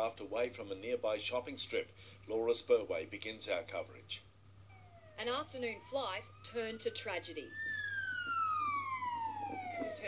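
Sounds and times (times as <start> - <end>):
siren wailing downward: 4.7 - 10.0.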